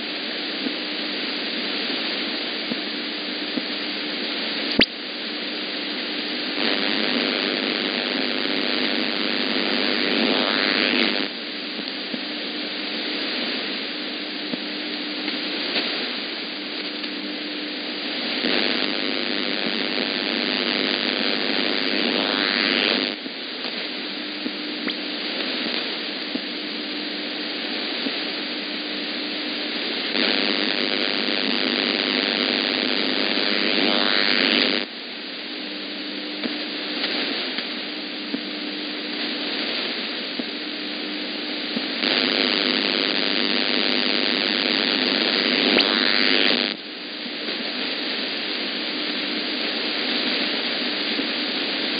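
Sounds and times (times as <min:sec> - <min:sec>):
faint low radio tone: 0:00.0 - 0:51.9
shortwave radio hiss and static: 0:00.0 - 0:51.9.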